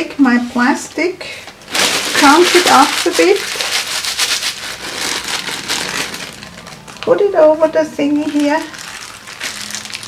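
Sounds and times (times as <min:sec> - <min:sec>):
plastic film crumpling: 0:01.6 - 0:07.4, 0:08.0 - 0:10.0.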